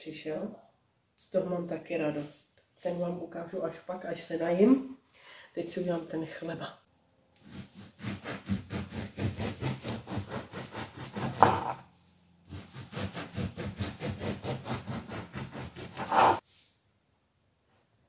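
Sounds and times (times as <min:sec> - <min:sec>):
knife sawing through crusty bread: 0:07.4 - 0:11.9, 0:12.5 - 0:16.4.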